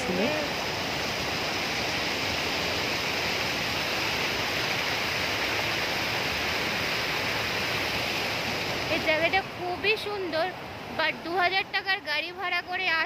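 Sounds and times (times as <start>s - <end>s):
river rapids rushing over boulders: 0.0s - 13.0s.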